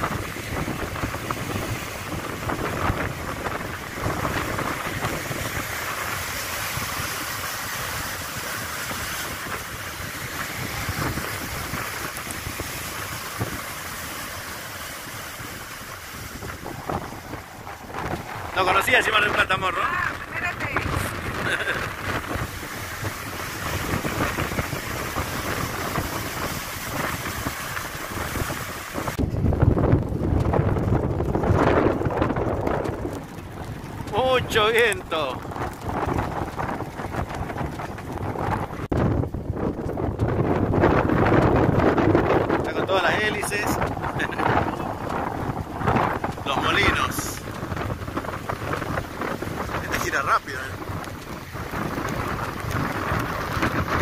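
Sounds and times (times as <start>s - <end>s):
surf breaking over rocks: 0.0s - 54.0s
wind buffeting microphone: 0.0s - 54.0s.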